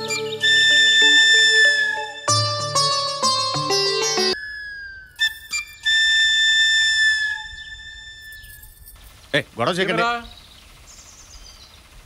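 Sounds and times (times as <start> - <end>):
held flute note: 0.0 - 3.0, 4.3 - 8.8.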